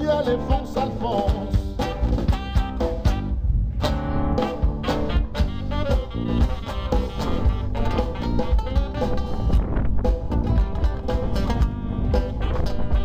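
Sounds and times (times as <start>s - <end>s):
acoustic guitar: 0.0s - 13.0s
second guitar: 0.0s - 13.0s
steady drum beat: 0.1s - 13.0s.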